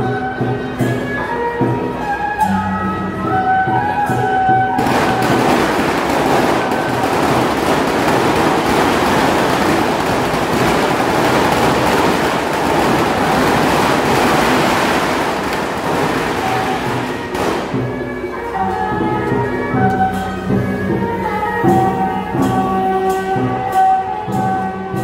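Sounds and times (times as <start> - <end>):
firecrackers crackling: 4.8 - 18.5.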